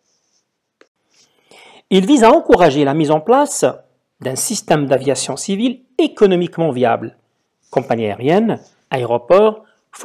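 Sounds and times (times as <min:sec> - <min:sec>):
short breath in: 0:01.1 - 0:01.9
narrator speaking: 0:01.9 - 0:10.0.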